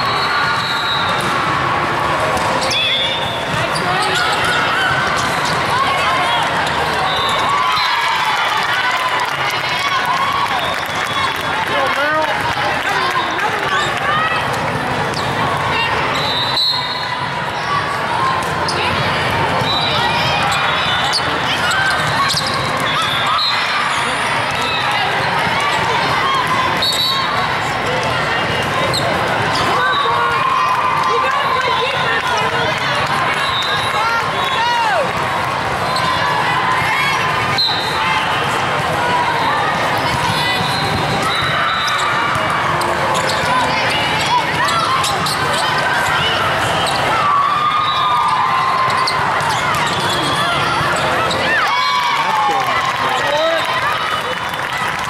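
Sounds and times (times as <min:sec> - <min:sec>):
voices echoing in a hall: 0:00.0 - 0:55.0
sneaker squeaks on court floor: 0:02.5 - 0:05.7, 0:19.6 - 0:24.9, 0:40.1 - 0:47.2, 0:48.8 - 0:51.6.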